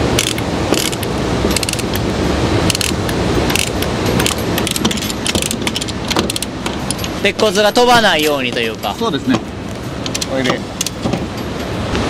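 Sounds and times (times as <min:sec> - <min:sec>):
chain hoist ratchet clicking: 0:00.2 - 0:02.0, 0:02.7 - 0:07.2.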